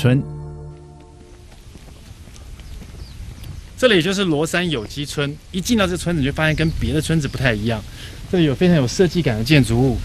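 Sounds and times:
man speaking: 0.0s - 0.4s
footsteps on paved road: 0.4s - 10.0s.

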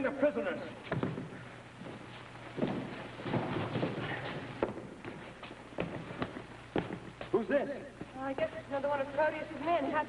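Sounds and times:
shuffling footsteps: 0.8s - 8.6s
people scuffling: 0.8s - 10.0s
knocks and thumps: 2.6s - 7.3s.

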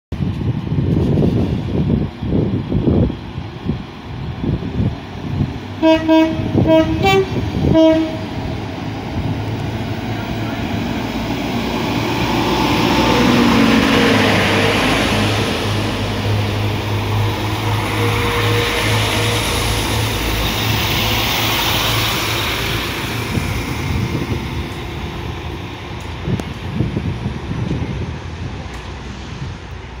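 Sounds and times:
rushing train wheels: 0.1s - 30.0s
diesel train engine running: 0.2s - 30.0s
train passing: 0.2s - 30.0s.

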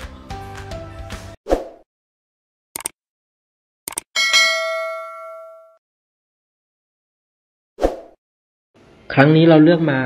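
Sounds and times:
double mouse click: 3.9s - 4.1s
notification bell ding: 4.2s - 5.8s.

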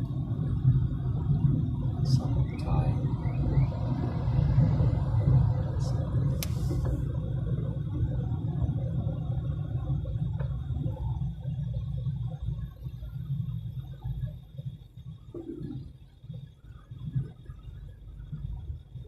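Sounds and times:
car driving slowly: 0.0s - 19.0s
sharp click with hiss: 6.3s - 7.0s.

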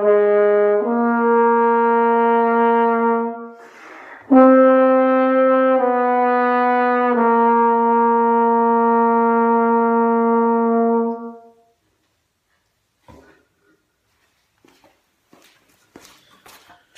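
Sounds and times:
brass horn holding a long note: 0.0s - 11.8s
faint knocks and rustling: 11.9s - 16.9s.

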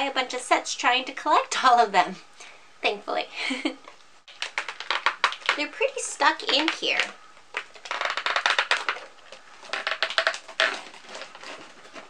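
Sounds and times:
plastic packaging crackling: 4.3s - 12.0s.

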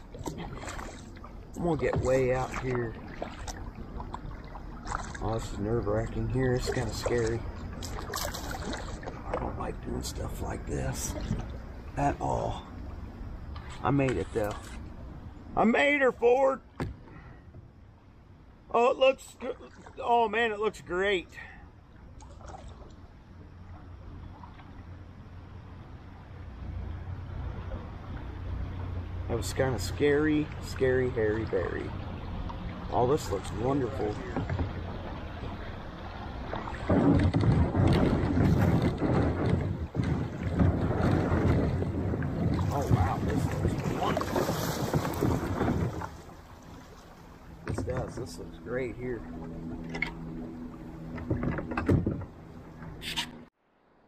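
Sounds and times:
river water trickling along hull: 0.0s - 54.0s
wind buffeting microphone: 31.8s - 47.0s.

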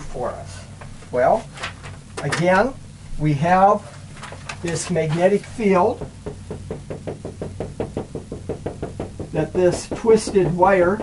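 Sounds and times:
marker tapping on whiteboard: 6.0s - 11.0s.

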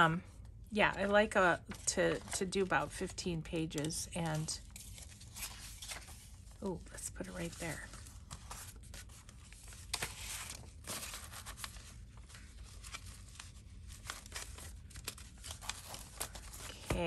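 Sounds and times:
paper pages rustling: 1.7s - 2.5s, 3.8s - 17.0s.

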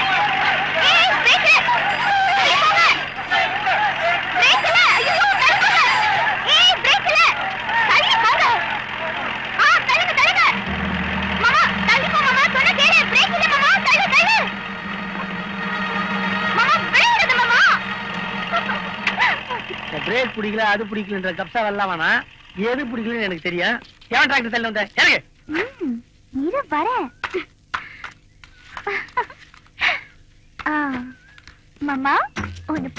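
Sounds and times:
excited voices shouting: 0.0s - 21.2s
tractor engine humming: 0.0s - 32.9s.

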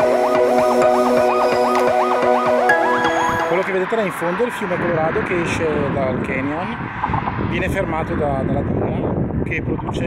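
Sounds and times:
electronic music: 0.0s - 4.2s
man speaking: 3.5s - 6.8s, 7.5s - 10.0s.

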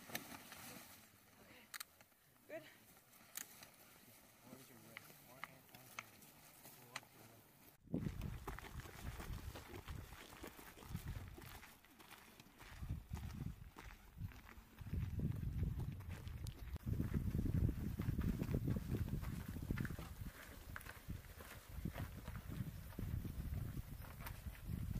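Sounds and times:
wind rumbling on microphone: 7.8s - 11.6s, 12.6s - 24.9s
footsteps on gravel: 7.9s - 24.9s.

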